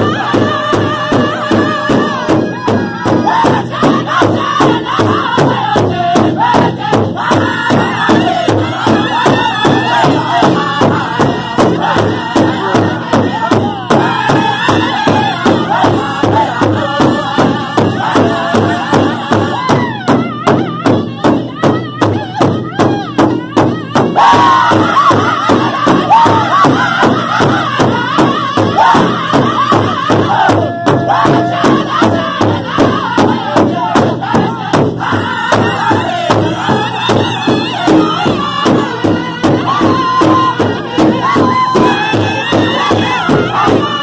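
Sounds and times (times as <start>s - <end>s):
drum group singing: 0.0s - 44.0s
steady beat on large drum: 0.0s - 44.0s.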